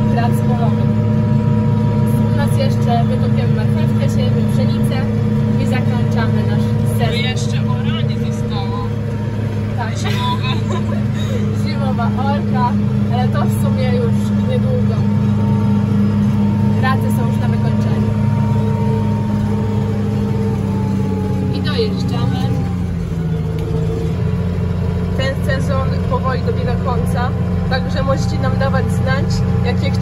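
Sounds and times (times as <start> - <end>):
tractor engine running: 0.0 - 30.0.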